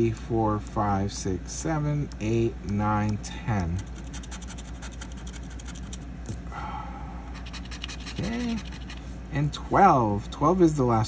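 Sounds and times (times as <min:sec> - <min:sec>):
scratcher scraping lottery ticket: 0:03.6 - 0:06.0.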